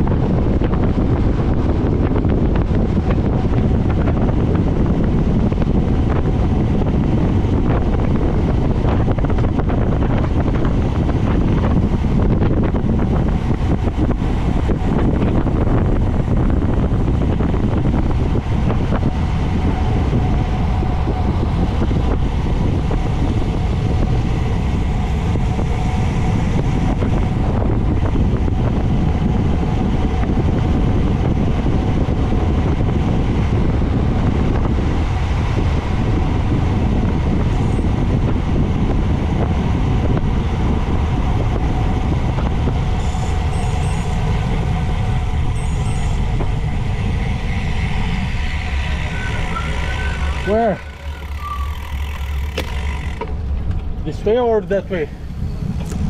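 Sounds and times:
bicycle tyres on asphalt: 0:00.0 - 0:56.0
wind on microphone: 0:00.0 - 0:56.0.

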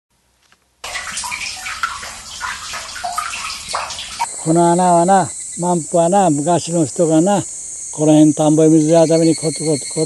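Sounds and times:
water running and splashing: 0:00.8 - 0:04.5.

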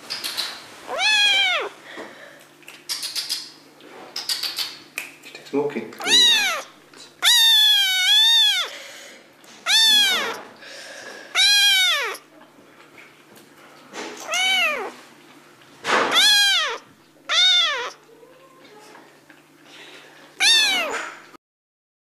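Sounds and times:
cat meowing: 0:00.9 - 0:01.8, 0:06.0 - 0:08.8, 0:09.6 - 0:10.5, 0:11.3 - 0:12.3, 0:14.2 - 0:15.0, 0:16.0 - 0:18.1, 0:20.4 - 0:21.2.

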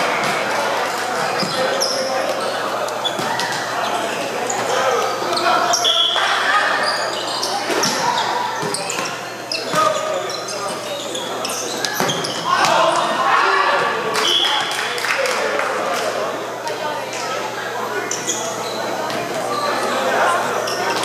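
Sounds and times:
echoing chatter of people: 0:00.0 - 0:21.0.

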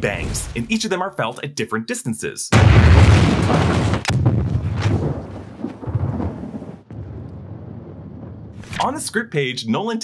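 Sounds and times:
explosion blasts: 0:02.5 - 0:08.8.

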